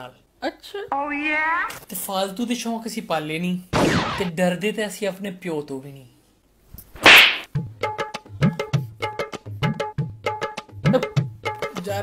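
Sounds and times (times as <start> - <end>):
sharp swish hit: 3.8 - 4.3, 7.0 - 7.5
rhythmic drum music: 7.4 - 12.0.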